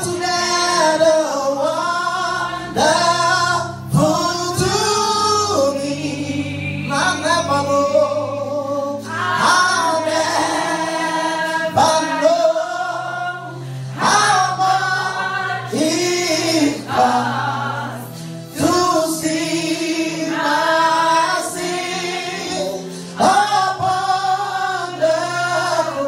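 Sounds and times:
man singing gospel into microphone: 0:00.0 - 0:26.0.

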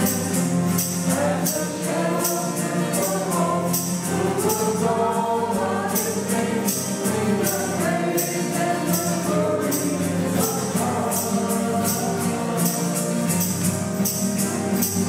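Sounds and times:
group singing a hymn: 0:00.0 - 0:14.2
acoustic guitar: 0:00.0 - 0:15.0
jingling percussion: 0:00.0 - 0:15.0
piano: 0:00.0 - 0:15.0.

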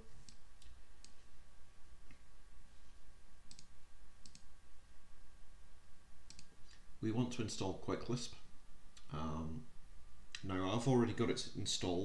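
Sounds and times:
faint electrical hum: 0:00.0 - 0:12.0
mouse and keyboard clicks: 0:03.5 - 0:04.5, 0:06.3 - 0:06.8.

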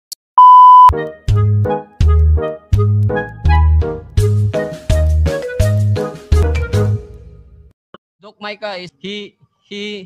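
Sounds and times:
test tone beep: 0:00.4 - 0:00.9.

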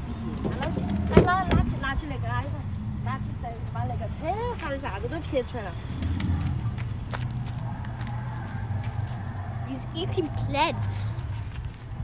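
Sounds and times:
child talking: 0:01.1 - 0:05.5, 0:09.7 - 0:11.3.

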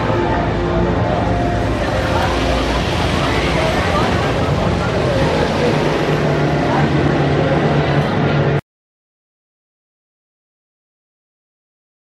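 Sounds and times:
roller coaster wheels rumbling: 0:00.0 - 0:08.6.

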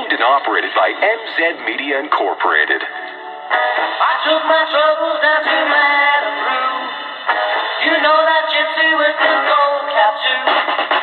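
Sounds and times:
pop song through small radio speaker: 0:00.0 - 0:11.0.

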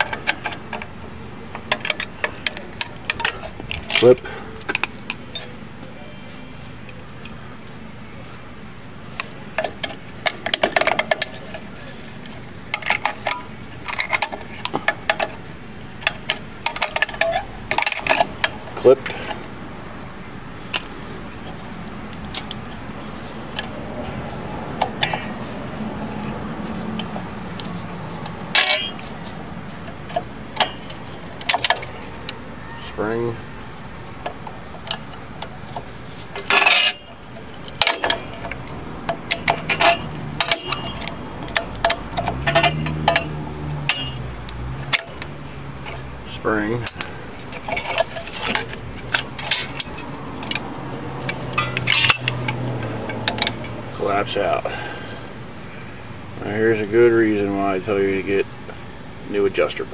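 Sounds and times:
metallic clicks of brake parts: 0:00.0 - 0:05.6, 0:09.1 - 0:19.7, 0:20.7 - 0:32.9, 0:33.6 - 0:55.4.

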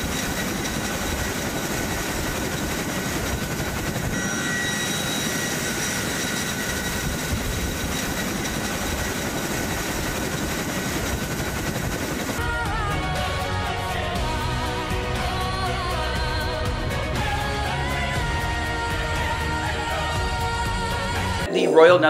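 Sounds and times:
faint high whine: 0:00.0 - 0:12.4
helicopter rotor and turbine: 0:00.0 - 0:21.5.

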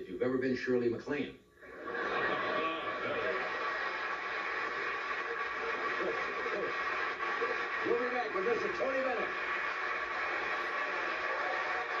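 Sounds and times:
audience laughing and applauding: 0:01.7 - 0:12.0.

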